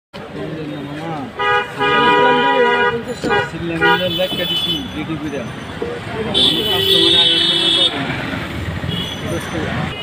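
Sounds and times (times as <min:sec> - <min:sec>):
people talking: 0:00.2 - 0:10.0
vehicle horn: 0:01.4 - 0:05.0, 0:06.4 - 0:08.0.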